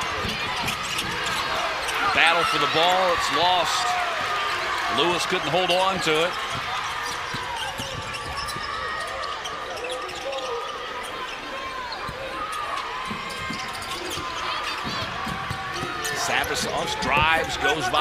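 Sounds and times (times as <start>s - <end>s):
sneaker squeaks: 0.0s - 3.0s, 6.1s - 17.0s
arena noise: 0.0s - 18.0s.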